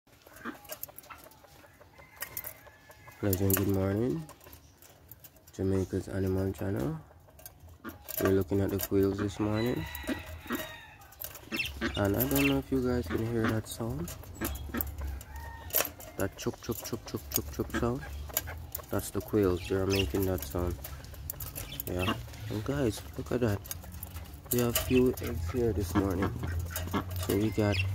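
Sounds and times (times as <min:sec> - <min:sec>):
quails calling: 0:00.1 - 0:27.9
quail calls: 0:10.5 - 0:15.6.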